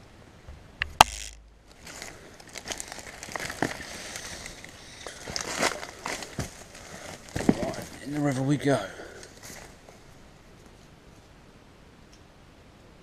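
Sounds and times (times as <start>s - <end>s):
dry plants rustling and crackling: 0.9s - 11.4s.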